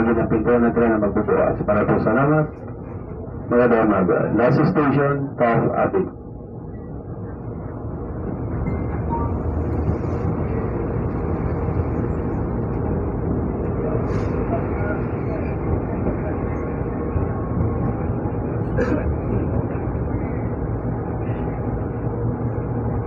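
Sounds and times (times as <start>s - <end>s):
light-rail train running: 0.0s - 23.0s.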